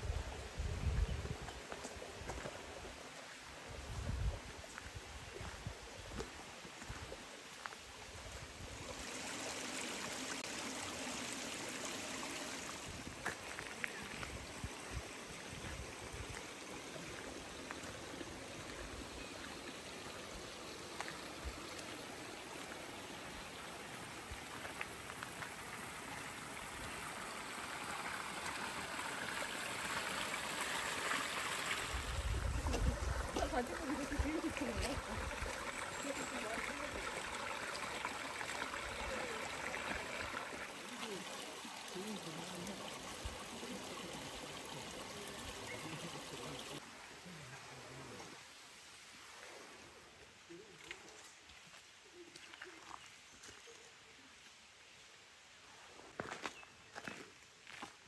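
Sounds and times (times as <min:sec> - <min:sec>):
stream rushing over rocks: 0:00.0 - 0:50.9.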